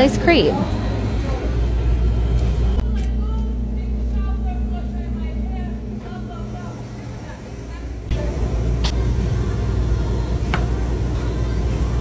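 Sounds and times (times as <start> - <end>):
faint voices: 0.0 - 12.0
refrigeration machinery humming: 0.0 - 12.0.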